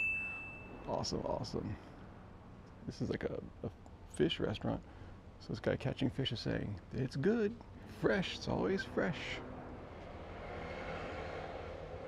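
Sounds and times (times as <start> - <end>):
distant engine drone: 7.6 - 12.0.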